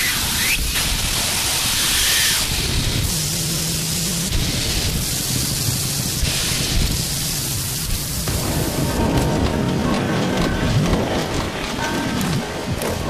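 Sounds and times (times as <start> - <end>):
loud static hiss: 0.0 - 10.2.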